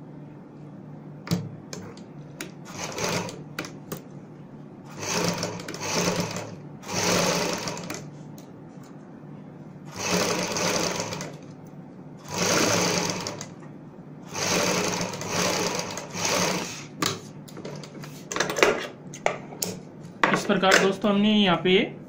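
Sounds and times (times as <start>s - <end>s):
sewing machine stitching: 2.6s - 3.8s, 4.9s - 8.1s, 9.9s - 11.5s, 12.2s - 13.6s, 14.3s - 16.9s.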